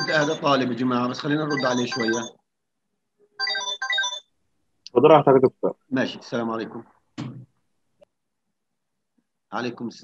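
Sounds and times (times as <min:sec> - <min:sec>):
phone ringtone: 0:00.0 - 0:00.7, 0:01.4 - 0:02.4, 0:03.4 - 0:04.3.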